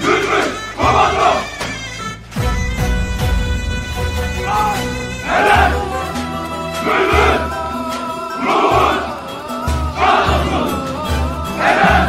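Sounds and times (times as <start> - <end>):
soldiers shouting in unison: 0.0 - 1.6, 4.4 - 12.0
music with pulsing bass: 2.1 - 12.0.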